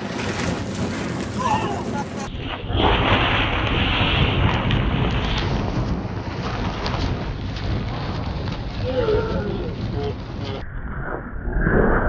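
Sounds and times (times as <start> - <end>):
wind buffeting microphone: 0.0 - 10.6.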